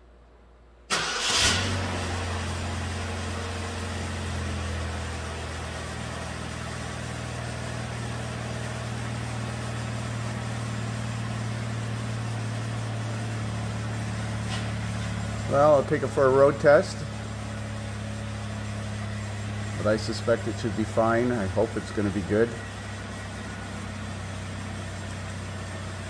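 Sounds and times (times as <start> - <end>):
car engine starting and idling: 0.9 - 26.0.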